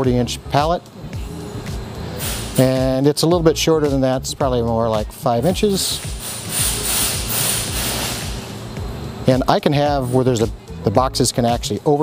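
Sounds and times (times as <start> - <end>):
quiet background music: 0.0 - 12.0
steady hissing noise: 0.0 - 12.0
thin high whine: 0.0 - 12.0.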